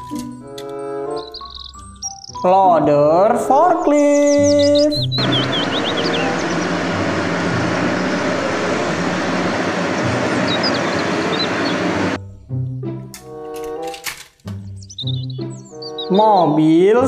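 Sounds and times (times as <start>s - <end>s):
background music with chirps: 0.0s - 17.0s
diesel engine working under load: 5.2s - 12.2s.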